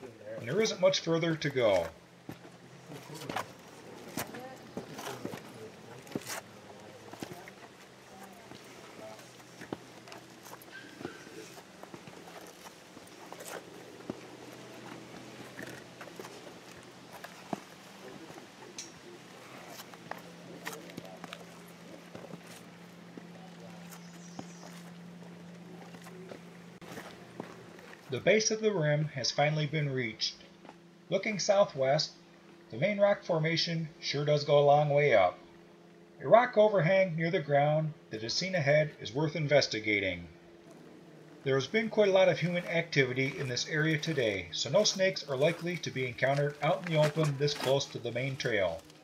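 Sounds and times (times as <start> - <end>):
faint low hum: 0.0 - 49.0
footsteps on stone steps: 2.2 - 6.5, 7.1 - 18.5, 19.7 - 28.1.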